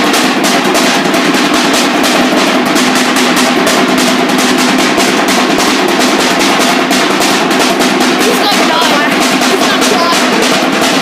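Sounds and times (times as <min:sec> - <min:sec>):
rapid drumming: 0:00.0 - 0:11.0.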